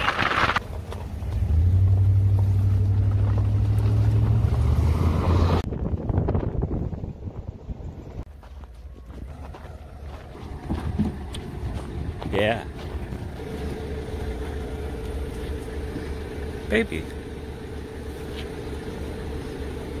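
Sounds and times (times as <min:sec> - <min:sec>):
wind on microphone: 0:05.5 - 0:08.2
low machinery rumble: 0:05.7 - 0:20.0
mid-pitched hum: 0:08.0 - 0:20.0.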